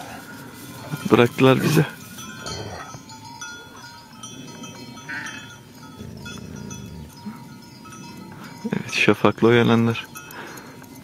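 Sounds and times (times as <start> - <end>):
sheep bells ringing: 0.0 - 11.0.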